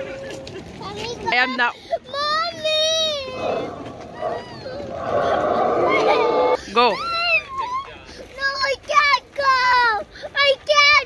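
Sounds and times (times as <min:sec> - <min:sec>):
high wavering dinosaur cry: 0:03.3 - 0:07.3.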